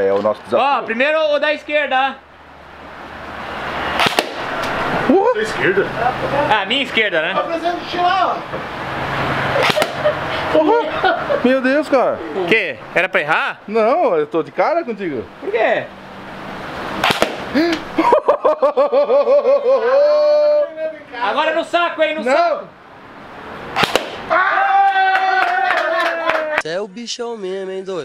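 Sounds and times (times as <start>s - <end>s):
rifle shots popping: 4.0s - 4.5s, 9.6s - 10.1s, 17.0s - 17.5s, 23.8s - 24.2s
man exclaiming: 5.1s - 6.5s, 19.0s - 21.6s, 24.3s - 26.7s.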